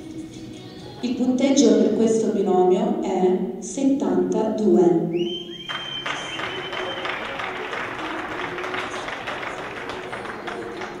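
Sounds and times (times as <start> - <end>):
sharp rising whistles: 5.1 - 7.1
spectators clapping: 5.6 - 11.0.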